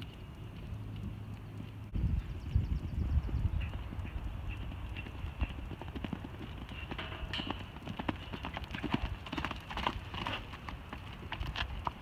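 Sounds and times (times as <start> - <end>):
horse hoofbeats: 3.2 - 12.0.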